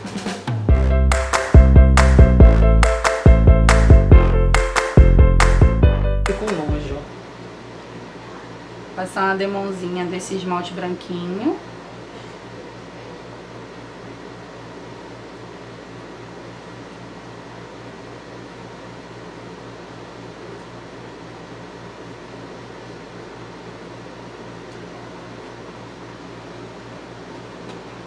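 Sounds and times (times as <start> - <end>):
steady background hum: 0.0 - 28.0.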